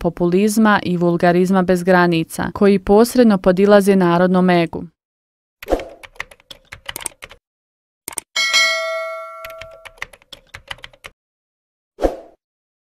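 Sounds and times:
quick clicks: 6.9 - 7.4, 8.1 - 8.3
bright bell ding: 8.4 - 10.0.

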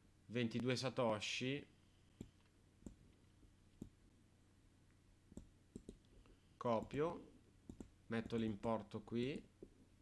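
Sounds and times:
faint computer mouse clicks: 5.4 - 6.1.

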